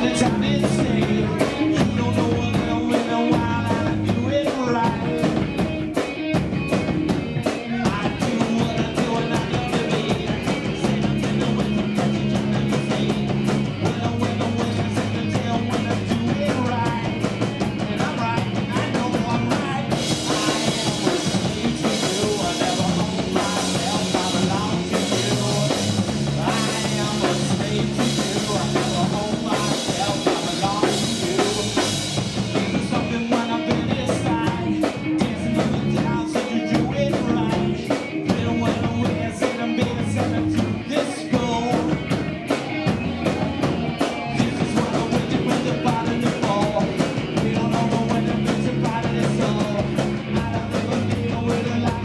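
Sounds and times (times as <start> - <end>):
bass guitar: 0.0 - 52.0
distorted electric guitar: 0.0 - 52.0
drum kit beat: 0.0 - 52.0
person singing: 0.0 - 52.0.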